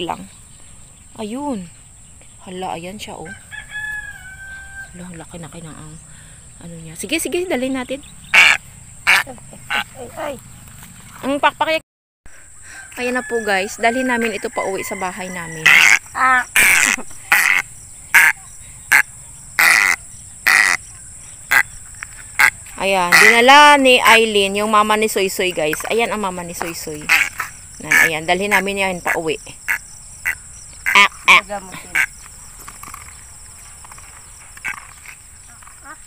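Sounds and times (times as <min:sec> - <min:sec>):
high-pitched insect chorus: 0:00.0 - 0:36.0
egret harsh calls: 0:08.2 - 0:10.3, 0:15.5 - 0:20.9, 0:21.5 - 0:24.2, 0:27.0 - 0:32.1.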